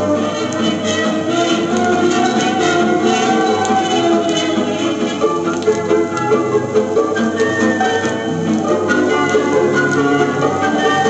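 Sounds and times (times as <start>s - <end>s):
variety music from a vinyl record: 0.0s - 11.0s.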